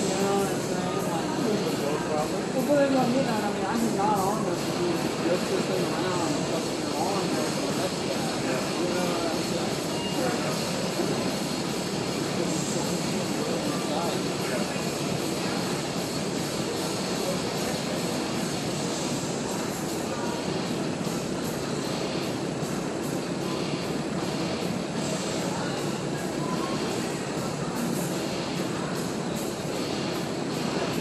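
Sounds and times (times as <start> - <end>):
indistinct background talk: 0.0 - 31.0.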